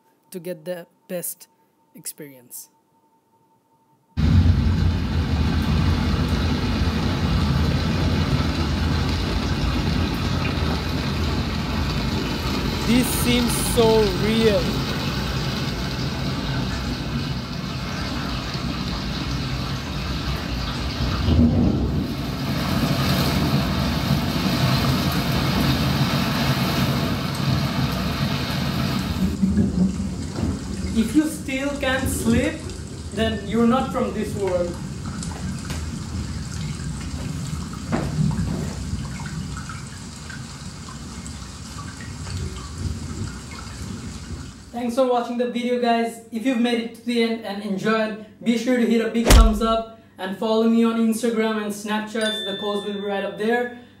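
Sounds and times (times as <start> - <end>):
low rumble of thunder: 4.2 - 12.3, 21.2 - 22.6
steady rain: 4.2 - 44.7.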